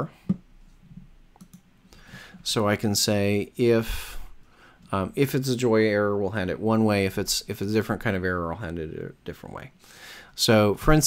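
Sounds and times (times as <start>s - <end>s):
computer mouse clicks: 1.4s - 1.7s.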